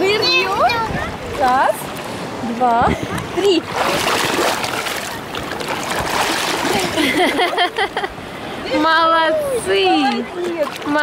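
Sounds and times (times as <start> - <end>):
sea water splashing and rushing: 0.0 - 11.0.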